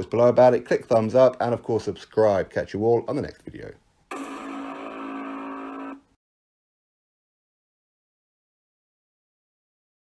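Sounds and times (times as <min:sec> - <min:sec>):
buzzy electronic tone: 0:04.1 - 0:06.2.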